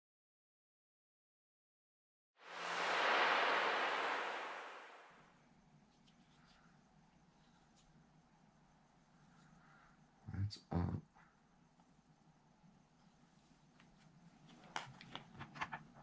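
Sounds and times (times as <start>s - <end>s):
loud rushing whoosh: 2.4s - 5.2s.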